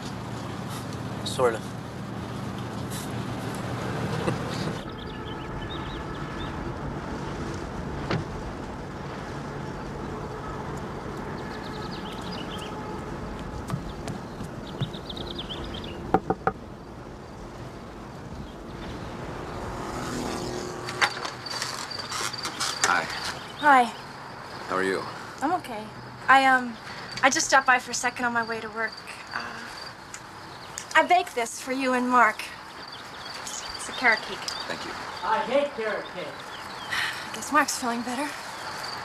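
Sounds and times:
tyres on road: 0.0s - 39.0s
sharp knocks: 16.1s - 16.6s.

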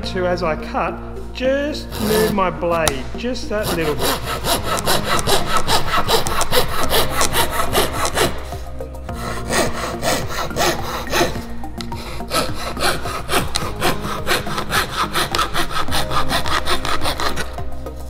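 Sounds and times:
hand saw cutting wood: 1.9s - 18.0s.

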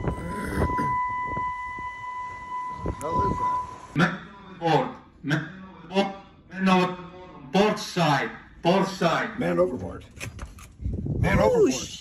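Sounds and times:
high-pitched electronic alarm tone: 0.0s - 4.0s.

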